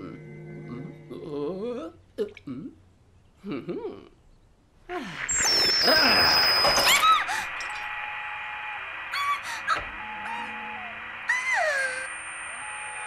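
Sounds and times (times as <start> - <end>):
soft background music: 0.0 - 1.8
thin high-pitched steady tone: 5.3 - 13.0.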